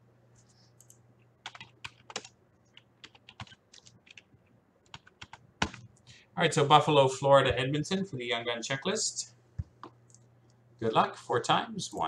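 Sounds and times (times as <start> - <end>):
computer keyboard typing: 0.8 - 5.9.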